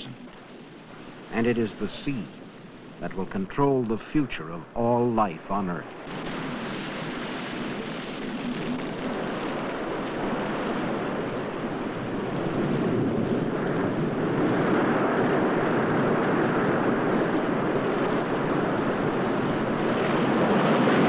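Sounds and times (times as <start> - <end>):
surf breaking against rocks: 4.8 - 21.0.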